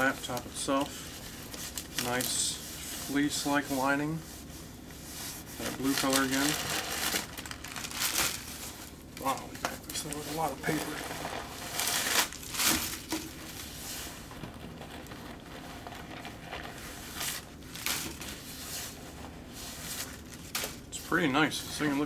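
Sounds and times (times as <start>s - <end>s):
packing paper crumpling and rustling: 0.0s - 4.0s, 5.0s - 22.0s.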